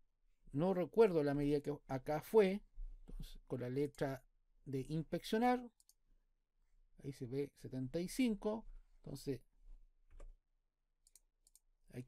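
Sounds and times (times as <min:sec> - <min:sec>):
faint computer mouse clicks: 0:11.0 - 0:11.6.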